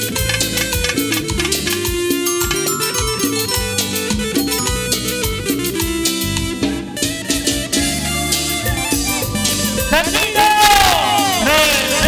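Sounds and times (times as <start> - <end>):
cumbia band instrumental music: 0.0 - 12.0.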